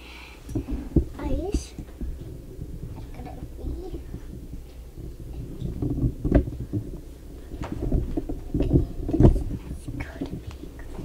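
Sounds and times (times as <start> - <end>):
low rumble of handling noise: 0.0 - 11.0.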